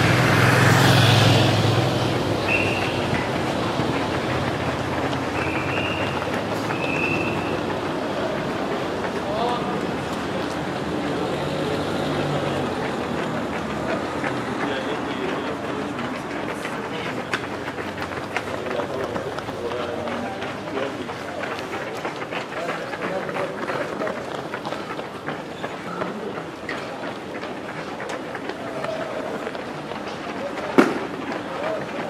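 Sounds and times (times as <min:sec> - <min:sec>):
runners' footsteps on asphalt: 0:00.0 - 0:32.0.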